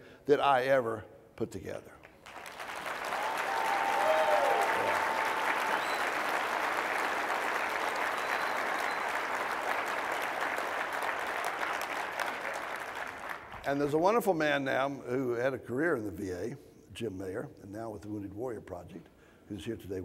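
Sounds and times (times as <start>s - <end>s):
audience applauding: 2.2s - 13.8s.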